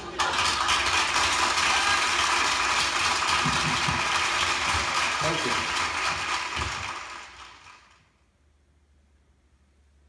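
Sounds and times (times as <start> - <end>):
audience applause on a record: 0.0 - 8.1.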